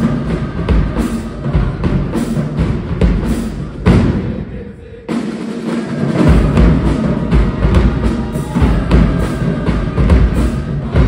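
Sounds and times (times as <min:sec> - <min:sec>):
drums and cymbals: 0:00.0 - 0:11.0
marching band playing: 0:00.0 - 0:11.0.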